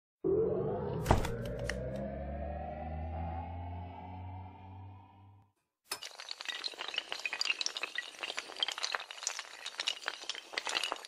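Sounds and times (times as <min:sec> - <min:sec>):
tiles toppling like dominoes: 0:05.9 - 0:11.0.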